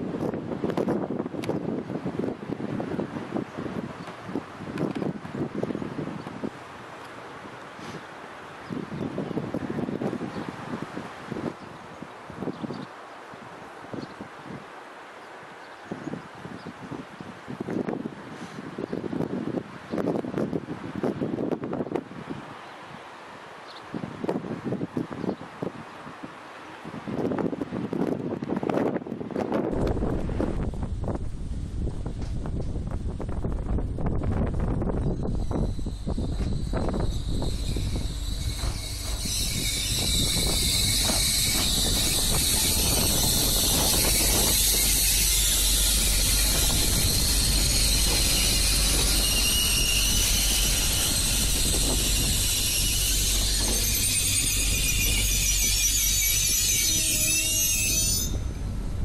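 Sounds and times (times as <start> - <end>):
wind gusting on microphone: 0.0 - 14.8, 15.6 - 59.0
railcar running: 17.4 - 59.0
approaching train rumble: 29.7 - 59.0.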